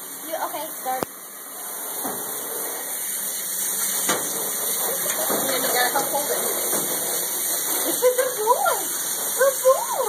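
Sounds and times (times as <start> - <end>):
hose sprayer hissing: 1.6 - 10.0.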